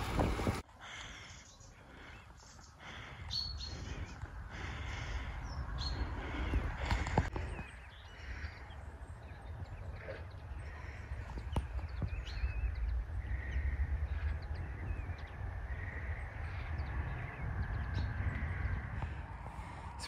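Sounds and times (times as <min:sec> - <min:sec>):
birds chirping: 0:00.0 - 0:20.0
steady low rumble: 0:00.0 - 0:20.0.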